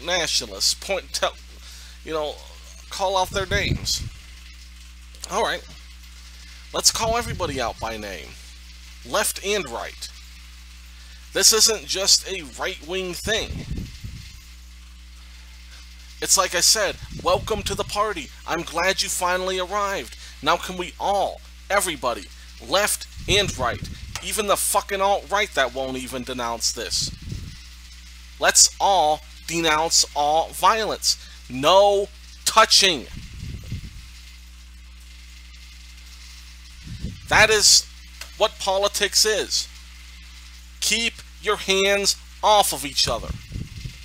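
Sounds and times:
faint hiss: 0.0s - 44.0s
low electrical hum: 0.0s - 44.0s.

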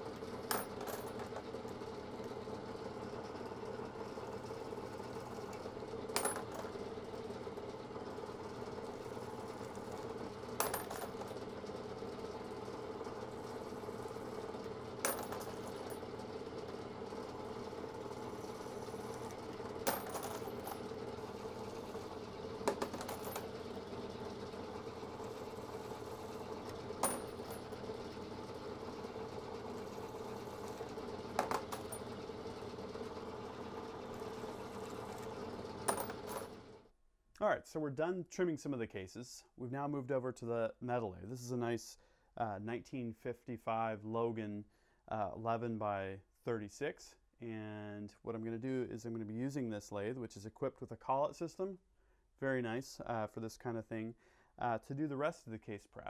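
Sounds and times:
milling spindle humming and whining: 0.0s - 36.8s.

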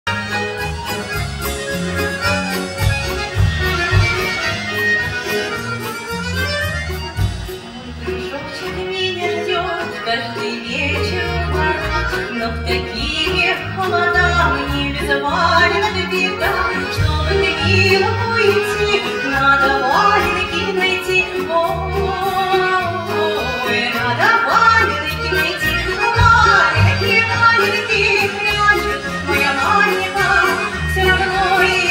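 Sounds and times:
drum kit: 0.1s - 8.0s
drums: 0.1s - 8.8s, 14.3s - 21.0s, 24.7s - 31.9s
bass guitar: 0.1s - 31.9s
button accordions: 0.1s - 31.9s
plucked folk strings: 0.1s - 31.9s
woman singing: 8.3s - 31.9s.

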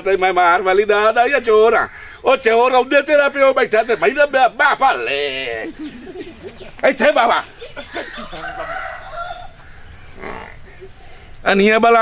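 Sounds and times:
chicken clucking: 7.5s - 11.0s
rooster crowing: 7.8s - 10.3s.

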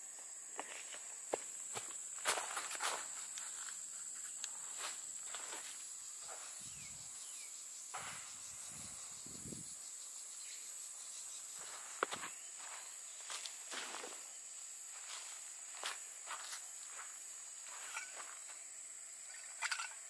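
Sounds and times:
high-pitched insect drone: 0.0s - 20.0s
footsteps and rustles on grass: 0.2s - 6.9s, 11.3s - 18.7s.

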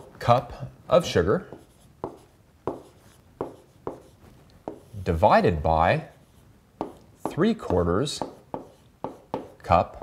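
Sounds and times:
stylus tapping on tablet screen: 6.8s - 9.6s.

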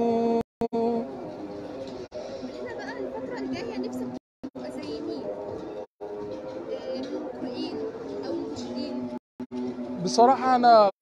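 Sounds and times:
background chatter of voices: 1.4s - 9.2s.

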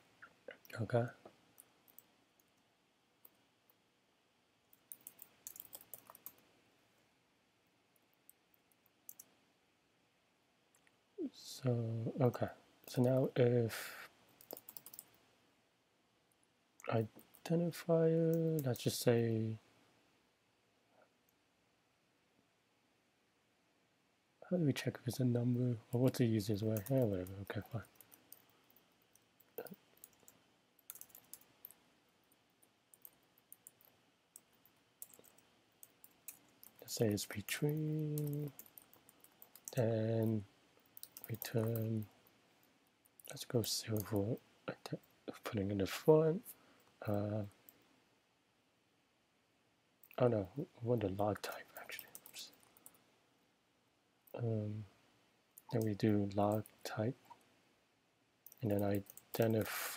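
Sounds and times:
computer keyboard keystrokes: 4.8s - 6.4s, 14.4s - 15.1s, 29.6s - 31.8s, 40.9s - 41.9s.

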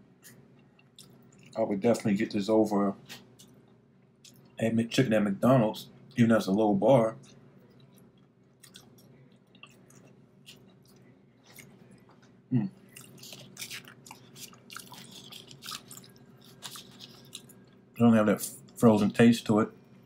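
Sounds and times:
person chewing food: 0.1s - 1.6s, 7.2s - 18.0s.

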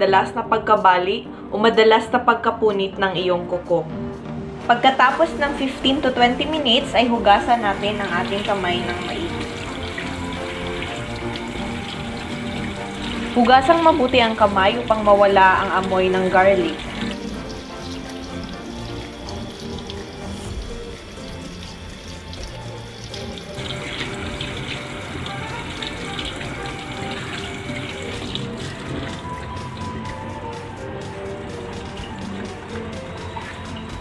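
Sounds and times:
background music: 0.0s - 34.0s
tap water running into sink: 6.5s - 34.0s.

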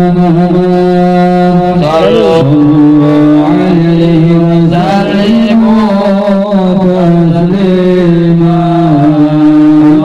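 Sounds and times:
man singing into microphone: 0.0s - 10.0s.

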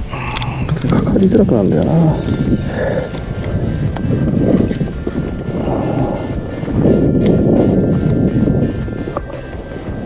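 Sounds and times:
background music: 0.0s - 10.0s
wind on microphone: 0.0s - 10.0s.

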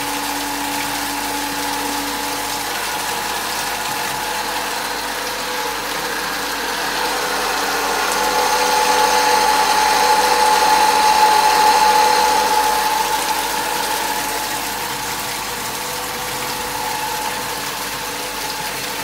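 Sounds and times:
electric water pump whining: 0.0s - 19.0s
water splashing into pond: 0.0s - 19.0s.

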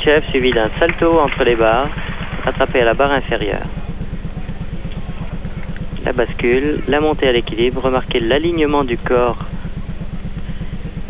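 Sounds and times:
faint hall ambience: 0.0s - 11.0s
low pulsing buzz: 0.0s - 11.0s.

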